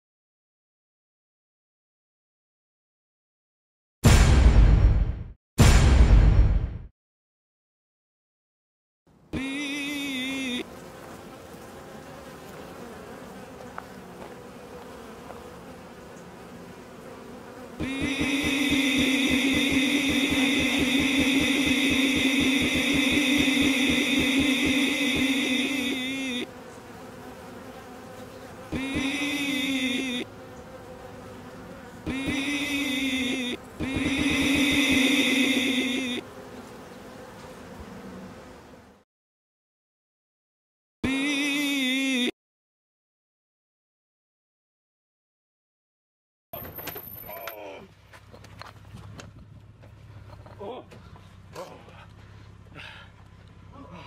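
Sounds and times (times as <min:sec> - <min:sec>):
honey bees buzzing: 0:09.3 - 0:39.0
person speaking: 0:17.8 - 0:26.5.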